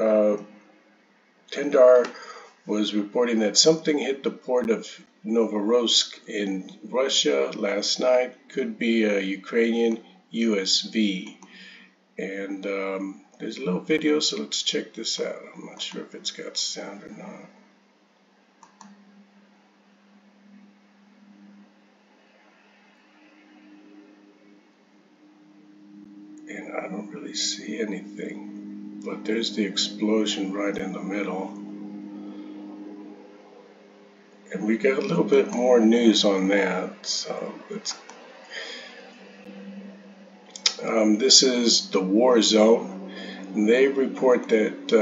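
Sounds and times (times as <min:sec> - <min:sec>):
man saying um: 0:00.0 - 0:00.4, 0:01.6 - 0:11.3, 0:12.2 - 0:17.5, 0:26.5 - 0:28.5, 0:29.1 - 0:31.6, 0:34.5 - 0:38.9, 0:40.6 - 0:45.0
faint steady hum: 0:00.0 - 0:45.0
computer mouse click: 0:18.6 - 0:19.0.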